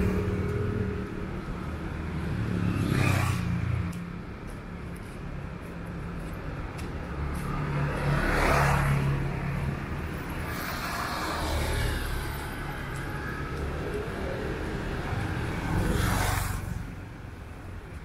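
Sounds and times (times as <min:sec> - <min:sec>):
steady engine hum: 0:00.0 - 0:08.0
vehicles passing close: 0:00.0 - 0:18.0.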